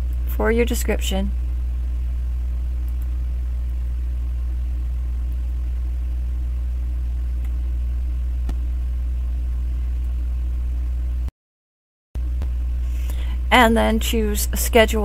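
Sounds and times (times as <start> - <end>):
loud steady low hum: 0.0 - 11.3, 12.2 - 15.0
faint clicks: 2.8 - 3.8.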